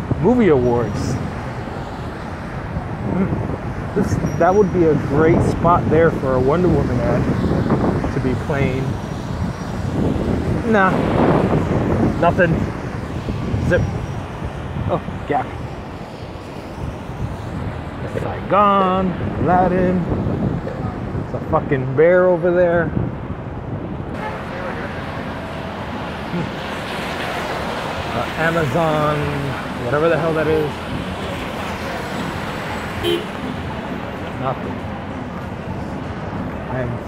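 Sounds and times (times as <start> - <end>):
traffic on a wet road: 0.0 - 37.0
wind buffeting microphone: 0.0 - 37.0
car tyres on wet pavement: 24.2 - 37.0.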